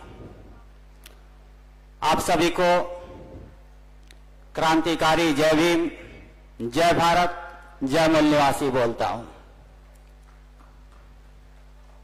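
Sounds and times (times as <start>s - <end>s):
electrical hum from pa system: 0.0s - 12.0s.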